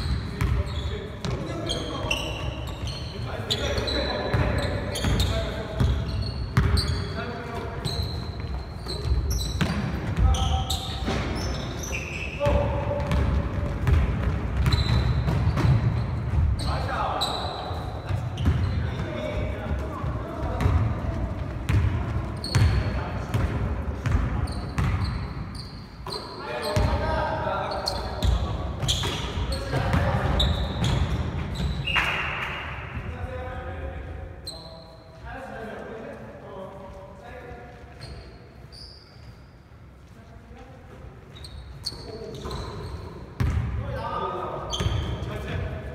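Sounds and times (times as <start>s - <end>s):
basketball bouncing on gym floor: 0.0s - 1.5s, 7.8s - 11.5s, 12.4s - 16.7s, 18.1s - 25.2s, 43.4s - 43.8s
sneakers squeaking: 0.0s - 33.2s, 34.4s - 35.2s, 37.4s - 45.9s.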